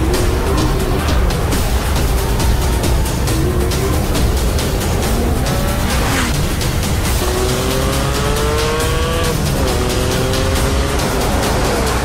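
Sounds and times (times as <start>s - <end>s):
background music: 0.0s - 12.0s
car engine revving: 0.0s - 12.0s.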